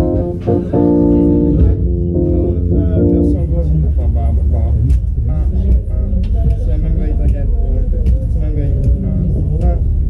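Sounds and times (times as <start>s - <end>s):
guitar lead of held notes: 0.0s - 4.0s
keyboard: 0.0s - 10.0s
drums: 4.4s - 10.0s.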